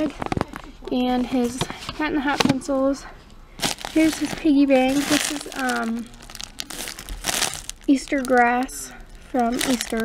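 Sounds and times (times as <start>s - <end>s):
plastic bag crinkling: 3.6s - 10.0s.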